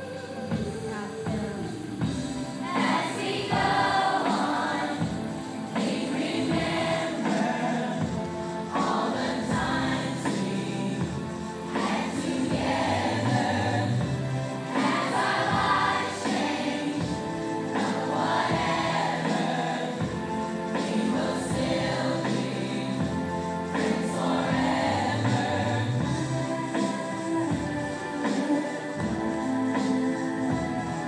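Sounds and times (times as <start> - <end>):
children's choir singing: 0.0 - 31.0.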